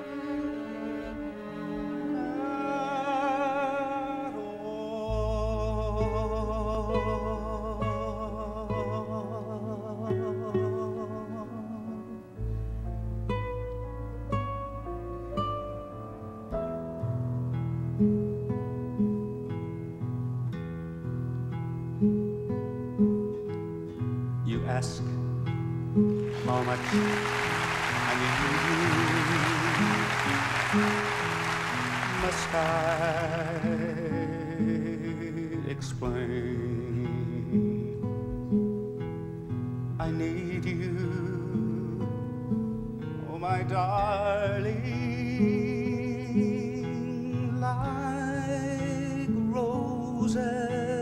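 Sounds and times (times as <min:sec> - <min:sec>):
acoustic guitar chords: 0:00.0 - 0:51.0
man singing with vibrato: 0:02.2 - 0:12.4, 0:26.3 - 0:38.1, 0:40.0 - 0:42.2, 0:43.2 - 0:51.0.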